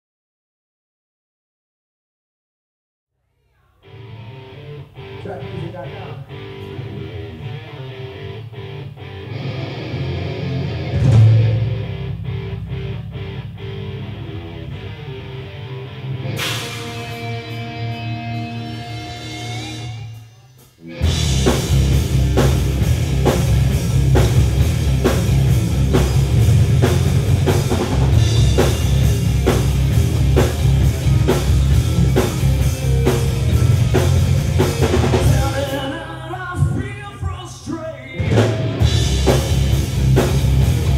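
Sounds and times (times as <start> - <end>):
held guitar notes: 3.8 - 36.2
live rock band: 3.8 - 40.9
driving drumbeat: 10.6 - 12.9, 18.8 - 35.9, 38.2 - 40.9.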